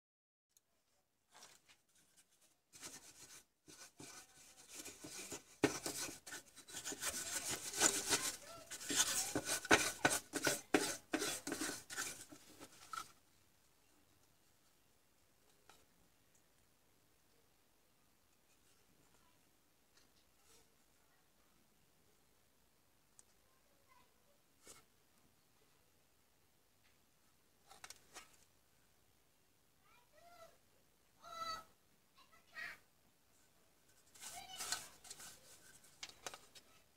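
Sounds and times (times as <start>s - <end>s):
circuit board rubbing on paper towel: 2.8s - 13.0s.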